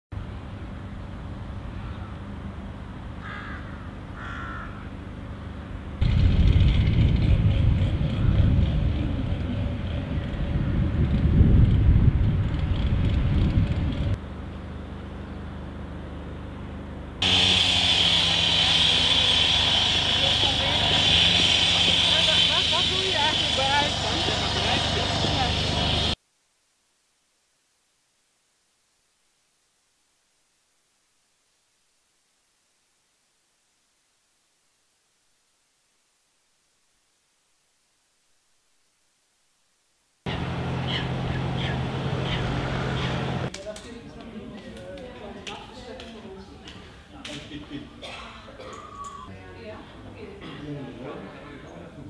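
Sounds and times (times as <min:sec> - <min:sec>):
wind rumbling on microphone: 0:06.0 - 0:14.2
voices: 0:18.5 - 0:26.2, 0:40.3 - 0:52.0
short calls: 0:40.3 - 0:43.5.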